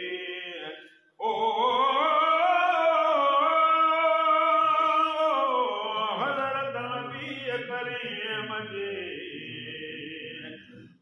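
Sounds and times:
men chanting a devotional hymn: 0.0 - 11.0.

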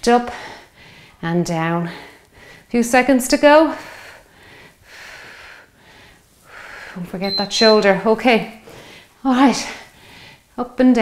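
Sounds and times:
woman breathing hard: 0.3 - 1.2, 1.9 - 2.7, 3.7 - 7.1, 8.6 - 9.2, 9.8 - 10.5.

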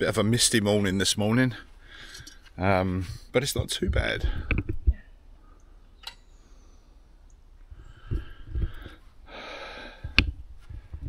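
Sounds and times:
breath near microphone: 5.4 - 7.1, 7.7 - 11.0
soft knocks and clicks: 10.0 - 11.0.

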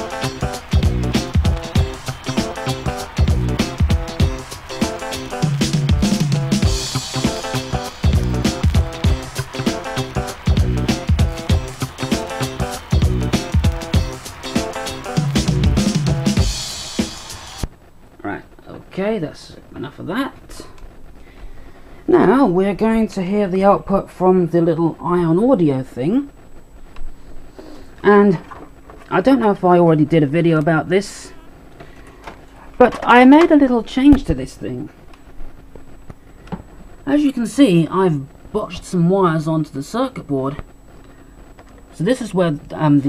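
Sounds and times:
drum-heavy music from vinyl record: 0.0 - 17.8
faint steady hum: 12.6 - 43.0.

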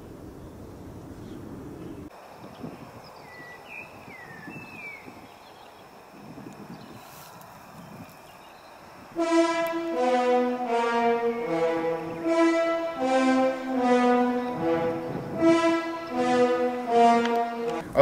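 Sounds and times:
wind rumble on microphone: 0.0 - 5.5, 6.1 - 8.3, 14.9 - 15.4
loud brass music: 9.2 - 18.0.

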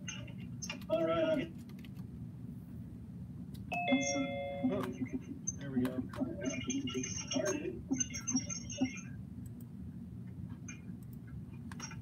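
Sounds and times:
keyboard typing: 1.6 - 2.1, 4.1 - 9.7
two-note electronic chime: 3.8 - 4.7.

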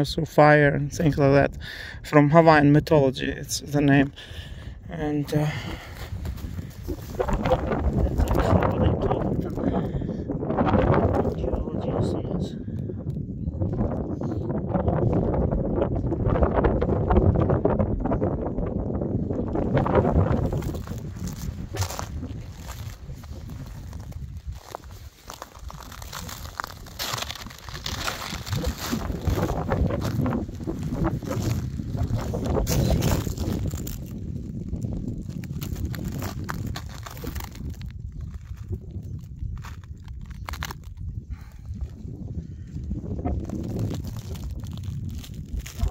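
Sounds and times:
footsteps crunching on rock: 19.8 - 34.1.

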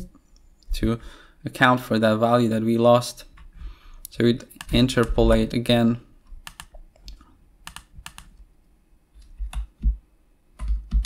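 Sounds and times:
keyboard key presses: 6.4 - 8.3, 9.2 - 10.0, 10.6 - 11.0.

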